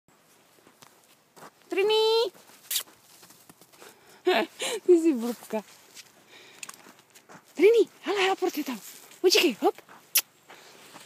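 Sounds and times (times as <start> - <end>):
footsteps in snow: 0.1 - 11.0.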